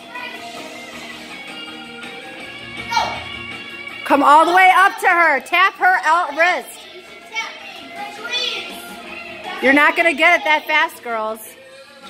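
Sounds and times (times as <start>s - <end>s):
girls chattering and calling out: 2.7s - 11.8s.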